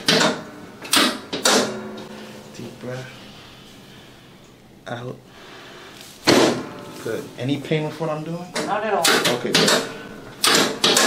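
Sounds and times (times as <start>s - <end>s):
adjusting table drop clacking: 8.6s - 11.0s.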